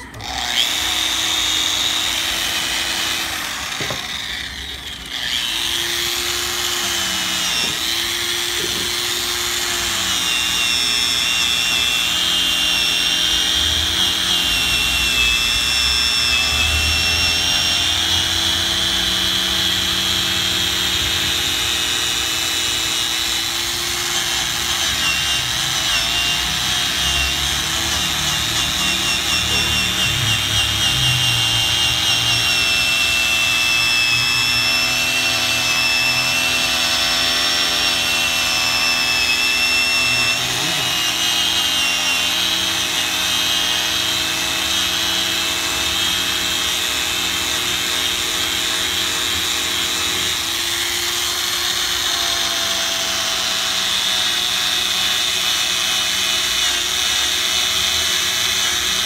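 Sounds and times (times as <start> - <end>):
power buffer whining: 0.0 - 59.0.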